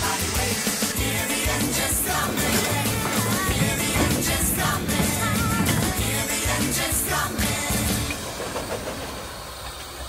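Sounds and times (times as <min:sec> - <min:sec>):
steam locomotive rumble and hiss: 0:00.0 - 0:10.0.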